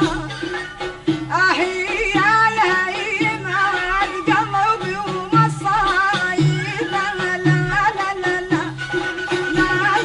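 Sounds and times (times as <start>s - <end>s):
instrumental accompaniment: 0.0s - 10.0s
woman singing folk song: 0.0s - 10.0s.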